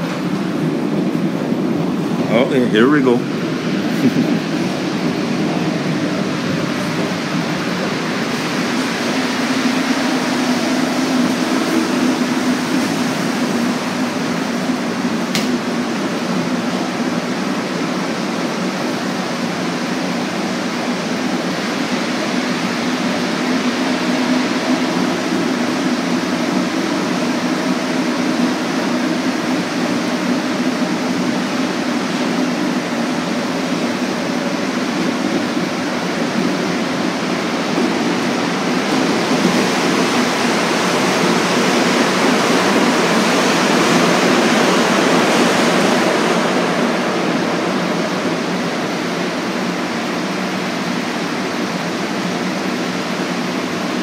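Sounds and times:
low motor hum: 0.0s - 20.4s
subway train rolling roar: 0.0s - 54.0s.

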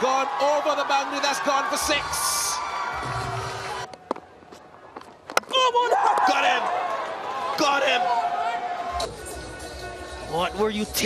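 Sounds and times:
crowd cheering: 0.0s - 9.9s.

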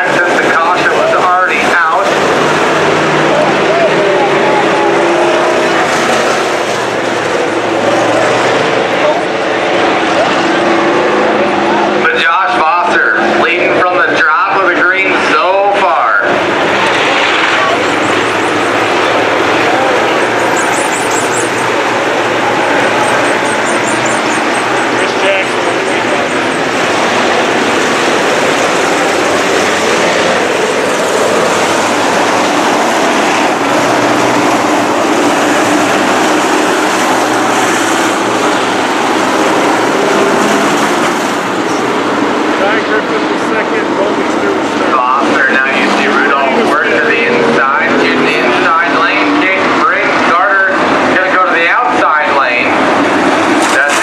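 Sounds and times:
race car engines roaring: 0.0s - 54.0s.

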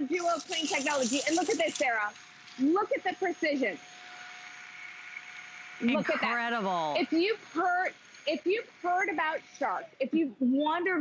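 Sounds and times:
person speaking: 5.8s - 7.1s.

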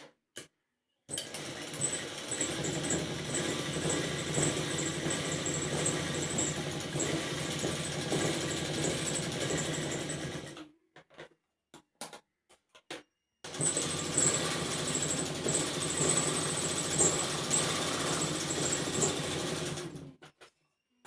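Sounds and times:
sewing machine running: 1.1s - 10.6s, 13.5s - 20.2s.

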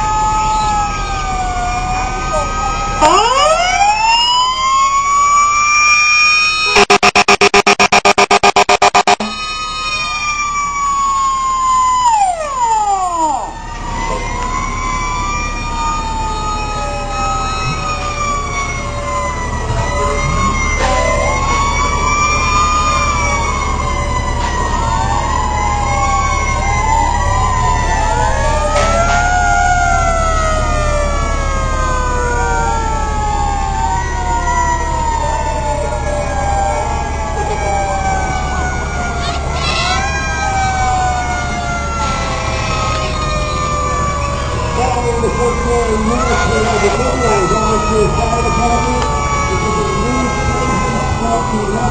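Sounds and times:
fire truck sirens: 0.0s - 51.9s.

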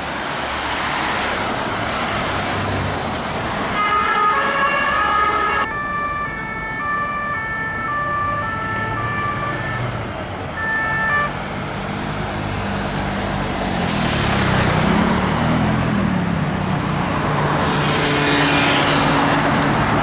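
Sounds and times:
street traffic engines: 0.0s - 20.0s
two-tone police siren: 3.8s - 11.3s.

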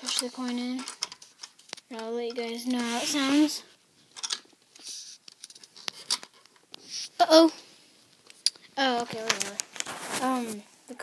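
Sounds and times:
plastic parts scraping and clicking: 0.0s - 3.2s, 4.1s - 6.7s.

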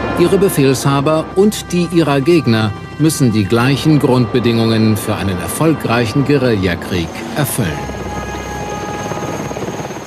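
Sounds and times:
helicopter rotor chopping: 4.9s - 10.0s.

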